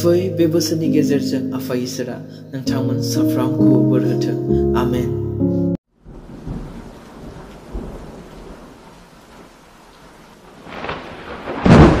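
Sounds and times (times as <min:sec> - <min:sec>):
steady rain: 0:05.9 - 0:12.0
thunder rumbling: 0:06.0 - 0:12.0.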